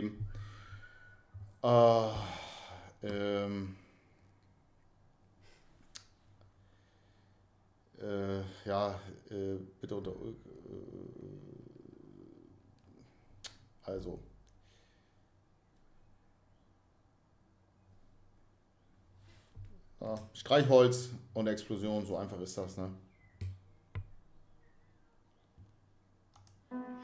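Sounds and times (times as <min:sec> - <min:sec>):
faint low hum: 0:00.0 - 0:27.0
man humming hesitantly: 0:01.6 - 0:03.8, 0:10.3 - 0:12.7.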